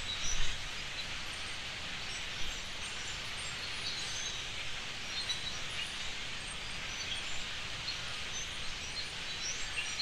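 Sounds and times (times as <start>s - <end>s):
flock of birds chirping: 0.0s - 10.0s
outdoor background noise: 0.0s - 10.0s.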